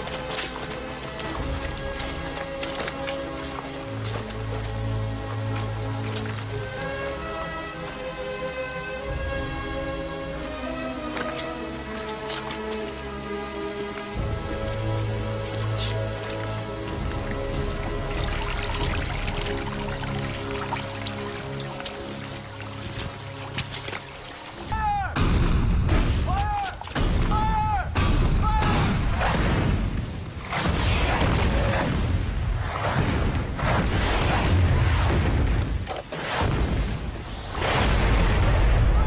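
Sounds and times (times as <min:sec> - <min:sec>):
slow sustained music: 0:00.0 - 0:24.7
heavy rain on mud and water: 0:00.0 - 0:39.0.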